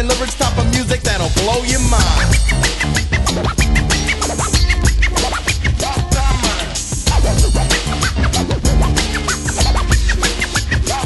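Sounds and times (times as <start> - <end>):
hip hop drum beat and bass: 0.0 - 11.0
turntable scratching: 0.0 - 11.0.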